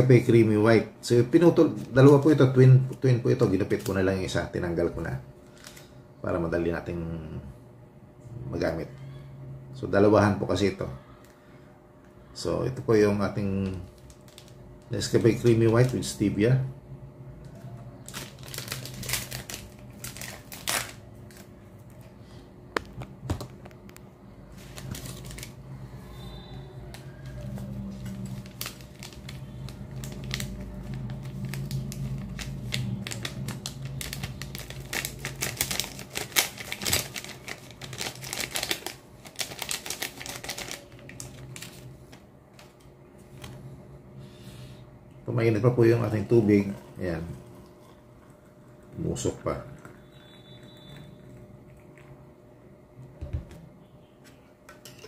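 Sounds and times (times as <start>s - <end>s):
low steady hum: 0.0s - 55.0s
foil sachet rattling: 13.4s - 16.4s, 18.0s - 21.4s, 24.6s - 25.6s, 28.0s - 42.0s.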